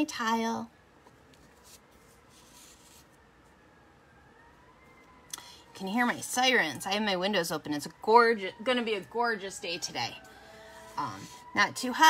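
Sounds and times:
distant emergency siren wailing: 0:02.8 - 0:12.0.

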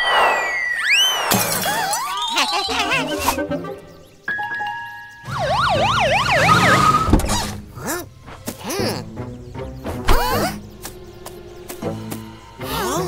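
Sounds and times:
cartoon police siren wailing: 0:01.8 - 0:03.3, 0:05.3 - 0:07.1
light background music: 0:02.8 - 0:06.2, 0:06.9 - 0:13.0.

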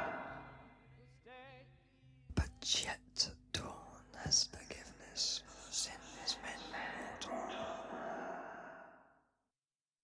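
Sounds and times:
faint background music: 0:00.0 - 0:08.0
person whispering: 0:02.3 - 0:08.9.

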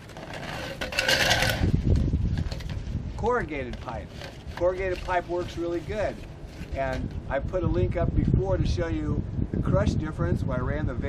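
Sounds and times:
plastic pipe scraping and rubbing: 0:00.0 - 0:07.2.

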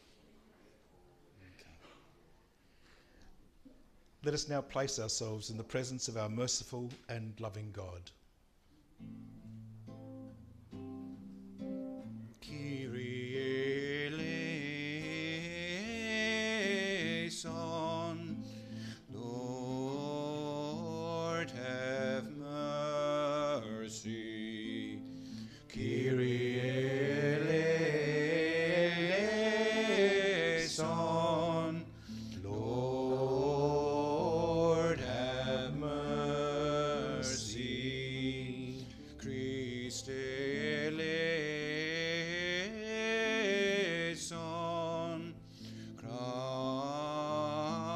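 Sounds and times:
instrumental church music: 0:09.2 - 0:47.9
chant-like singing: 0:12.4 - 0:18.4, 0:19.1 - 0:45.4, 0:46.0 - 0:47.9.

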